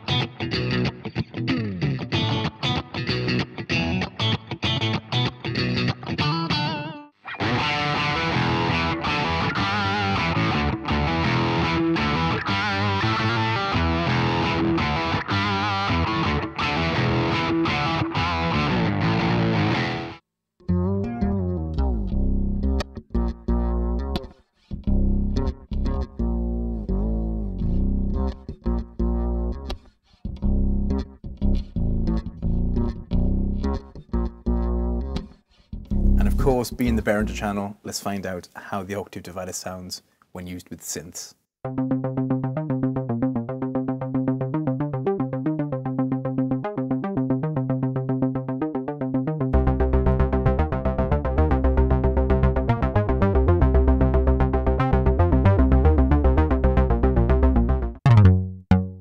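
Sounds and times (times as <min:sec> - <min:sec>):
electric guitar with sub-octave: 0:00.0 - 0:37.4, 0:41.6 - 0:59.0
fretless bass deep notes: 0:20.6 - 0:37.7, 0:41.7 - 0:59.0.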